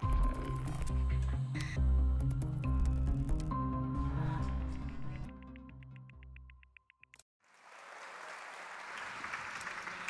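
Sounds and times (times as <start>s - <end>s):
audience applause: 7.4s - 10.0s.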